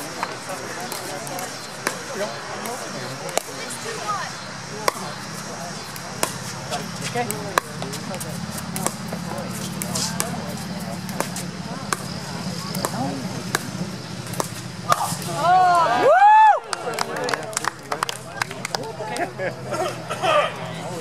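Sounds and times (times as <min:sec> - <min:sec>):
paddles striking plastic ball: 0:00.9 - 0:03.6, 0:07.2 - 0:15.3
ball bouncing on hard court: 0:04.8 - 0:05.2, 0:05.8 - 0:15.4.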